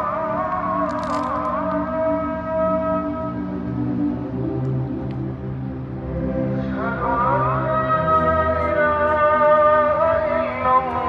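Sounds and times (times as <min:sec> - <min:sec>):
call to prayer over loudspeakers: 0:00.0 - 0:03.9, 0:06.7 - 0:11.0.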